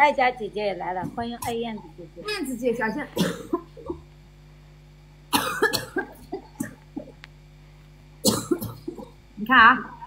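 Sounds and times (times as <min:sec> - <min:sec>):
low steady hum: 0:00.0 - 0:10.0
woman coughing: 0:02.2 - 0:04.0, 0:05.3 - 0:07.2, 0:08.2 - 0:09.2
throat sounds: 0:05.9 - 0:07.3, 0:08.3 - 0:09.2.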